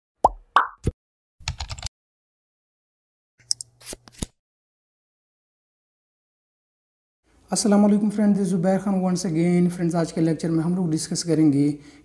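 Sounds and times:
cartoon pops dropping in pitch: 0.2 - 0.9
rapid keyboard typing clicks: 1.4 - 1.9.

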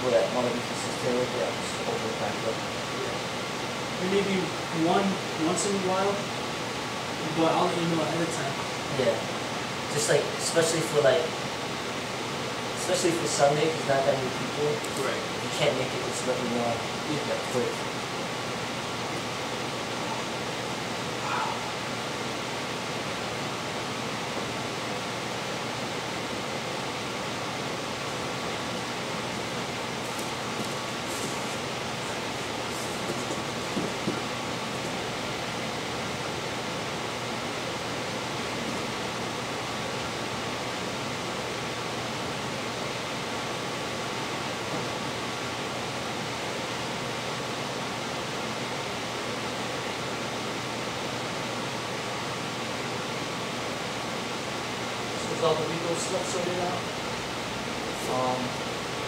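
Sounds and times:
faint steady hum: 0.0 - 59.0
room noise hiss: 0.0 - 59.0.

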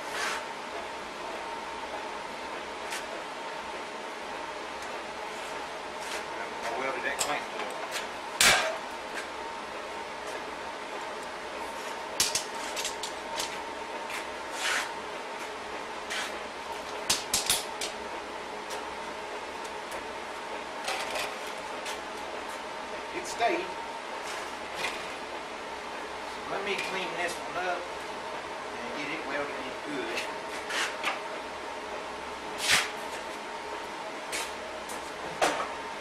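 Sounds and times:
steady background hum: 0.0 - 36.0
loud metal clank with ring: 8.4 - 8.8.

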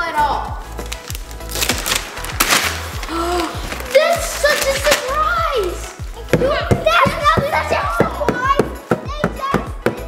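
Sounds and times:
background music: 0.0 - 10.0
wrapping paper tearing: 0.6 - 6.3.

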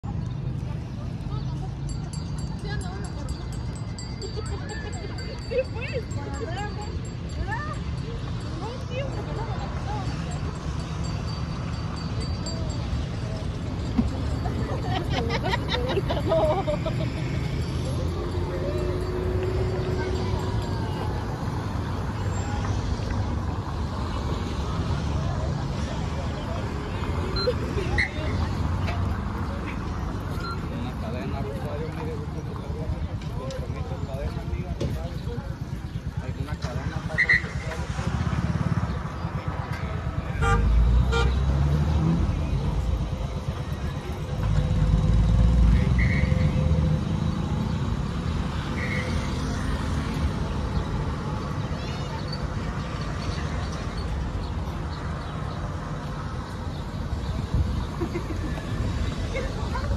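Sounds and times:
people talking: 0.0 - 17.1, 17.7 - 21.6, 24.7 - 40.9, 51.6 - 53.8, 58.0 - 59.9
low rumble of traffic: 0.0 - 59.9.

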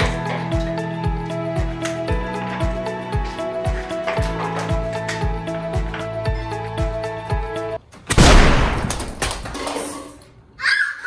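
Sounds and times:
background music with steady beat: 0.0 - 7.8
watermelon bursting with loud pop: 8.1 - 9.5
pieces and rubber bands landing: 8.1 - 10.2.

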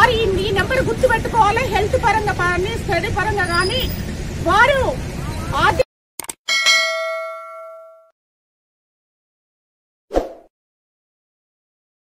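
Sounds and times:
notification bell ding: 6.5 - 8.1.

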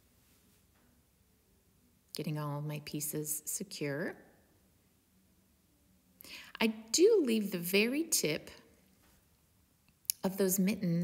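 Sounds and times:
woman speaking: 2.2 - 4.2, 6.6 - 8.6, 10.1 - 11.0
breath in: 6.2 - 6.6.

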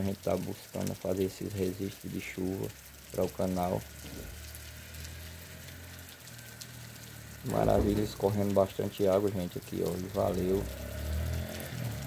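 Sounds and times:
rain falling: 0.0 - 12.0
water running over pavement: 0.0 - 12.0.

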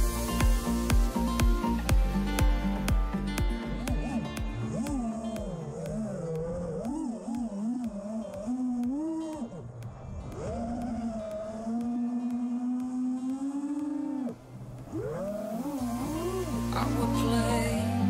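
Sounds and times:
quadcopter motors whining: 3.8 - 18.0.

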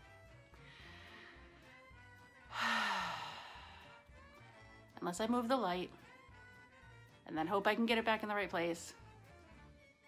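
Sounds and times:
soft background music: 0.0 - 10.0
woman sighing heavily: 2.5 - 4.0.

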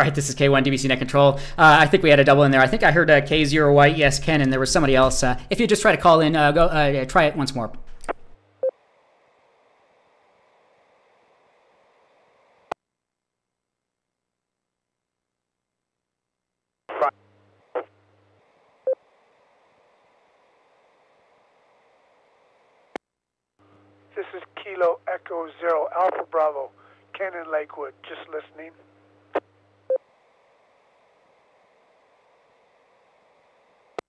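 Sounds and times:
radio static hiss: 0.0 - 12.8, 16.9 - 23.0, 23.7 - 34.0
person speaking over radio: 16.9 - 17.1, 24.2 - 28.8.

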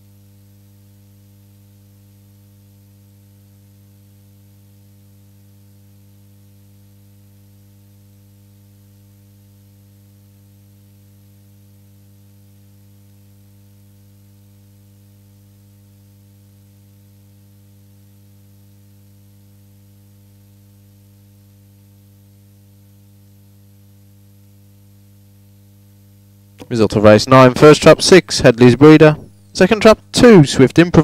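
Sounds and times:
electrical hum: 0.0 - 31.0.

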